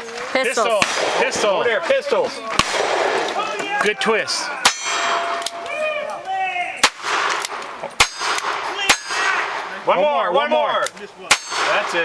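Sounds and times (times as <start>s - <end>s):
metallic ring of steel targets: 4.6s - 5.8s, 8.0s - 9.4s, 11.3s - 12.0s
revolver shots: 6.8s - 9.8s.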